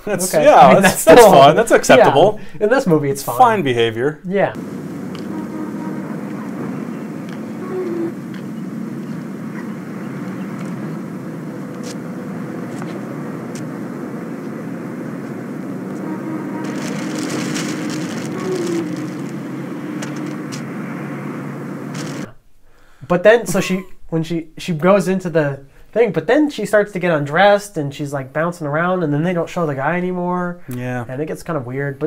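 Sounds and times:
crackling: 4.5s - 22.4s
outdoor traffic noise: 4.5s - 22.4s
low hum: 4.6s - 22.3s
film hiss: 4.6s - 28.4s.

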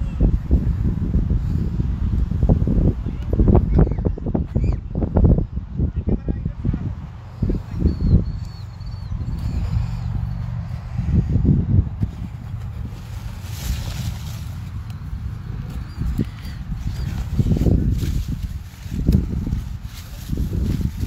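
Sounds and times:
wind rumbling on microphone: 0.0s - 21.0s
bird chirping: 7.7s - 10.4s.

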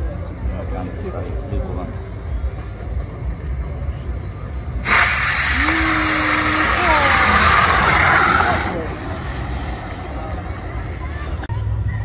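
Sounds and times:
tyres spinning on asphalt: 4.8s - 11.5s.

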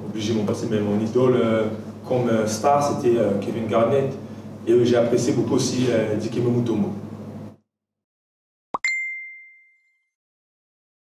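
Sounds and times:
notification pop and ding: 8.8s - 10.1s.

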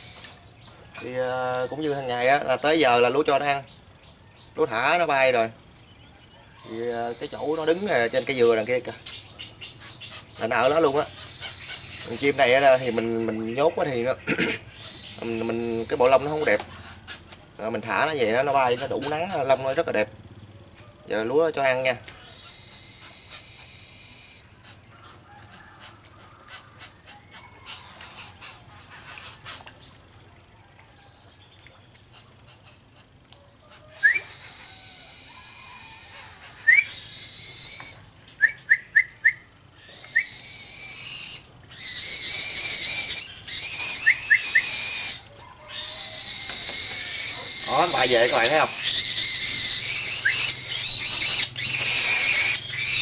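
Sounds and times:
falcons whistling: 6.2s - 19.9s, 21.8s - 24.8s, 33.6s - 53.0s
shrill falcon calls: 6.6s - 13.0s, 22.2s - 24.8s, 33.7s - 53.0s.

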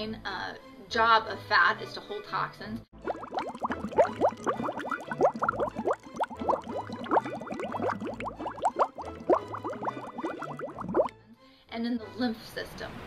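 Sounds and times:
water bubbling: 3.0s - 11.1s.

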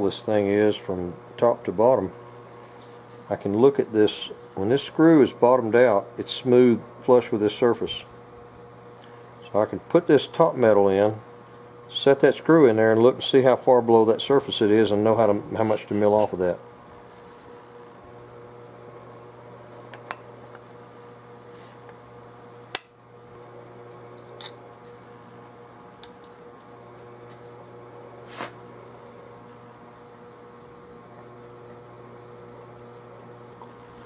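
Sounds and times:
short scrape: 28.2s - 28.6s.

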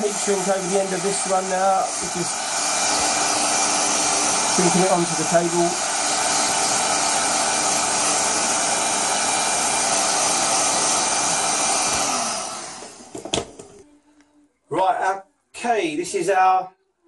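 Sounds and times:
heat gun blowing: 0.0s - 13.6s.

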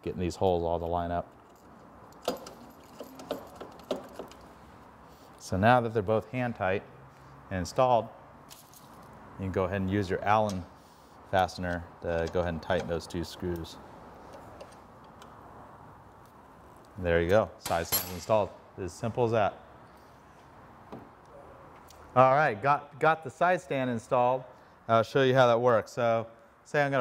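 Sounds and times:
light metallic clicks and clinks: 1.2s - 4.6s, 11.7s - 15.4s, 17.3s - 18.5s
allen key ticking on screws: 1.3s - 4.5s, 12.1s - 13.7s.

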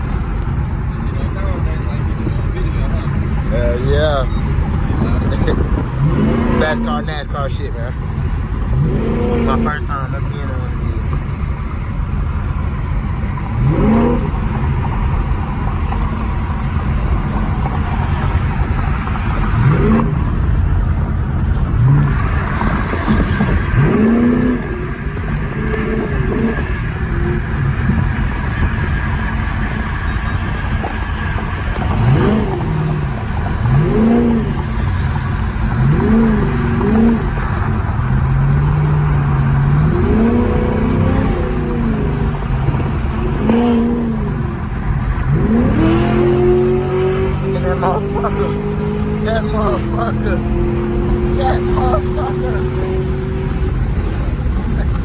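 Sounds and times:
car engine accelerating hard: 0.0s - 55.0s.

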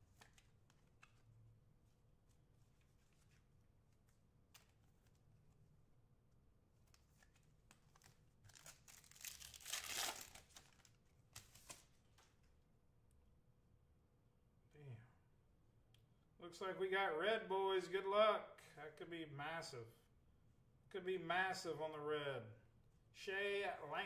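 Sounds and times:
foil wrapper tearing and crinkling: 8.0s - 11.8s.

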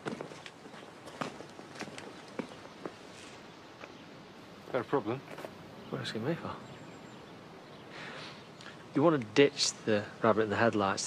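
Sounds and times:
footsteps walking: 0.0s - 4.0s, 5.2s - 5.6s.

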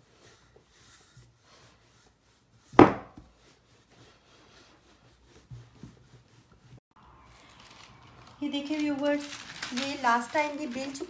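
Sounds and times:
rolling pin rubbing on dough: 0.0s - 6.8s
sharp wooden knock: 2.8s - 3.2s.

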